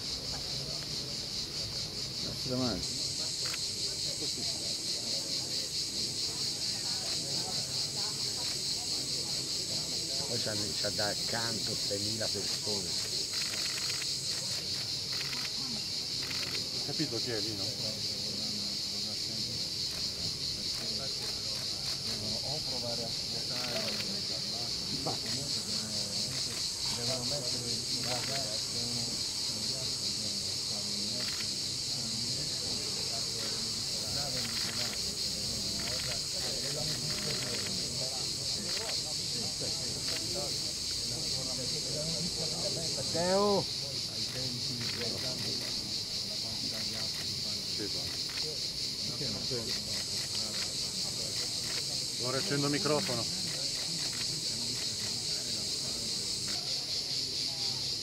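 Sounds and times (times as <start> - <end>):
high insect chorus: 0.0 - 58.0
people talking: 0.0 - 58.0.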